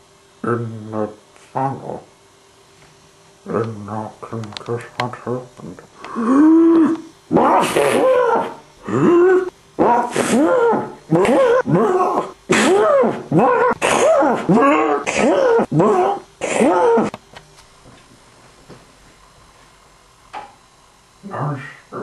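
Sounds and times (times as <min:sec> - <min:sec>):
person making wordless cries: 0:06.0 - 0:17.2.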